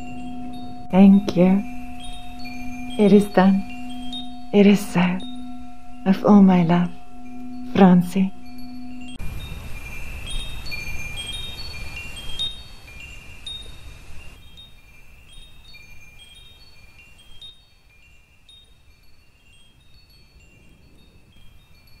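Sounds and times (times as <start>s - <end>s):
chimes tinkling: 0.0s - 22.0s
soft hiss: 0.0s - 22.0s.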